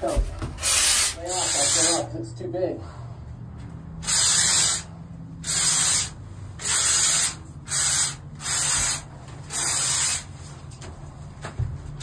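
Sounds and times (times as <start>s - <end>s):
spray foam gun hissing: 0.6s - 2.0s, 4.0s - 10.3s.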